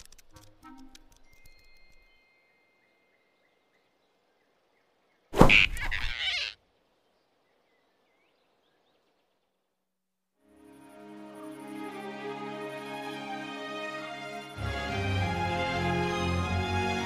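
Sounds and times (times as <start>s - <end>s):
cartoon squirrel squeal: 5.4s - 6.6s.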